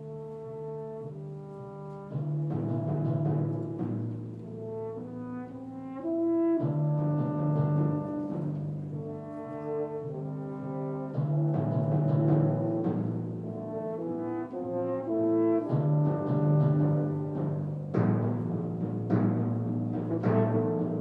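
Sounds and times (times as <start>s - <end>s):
french horns playing held notes: 0.0s - 18.4s, 19.9s - 21.0s
orchestra playing: 0.0s - 21.0s.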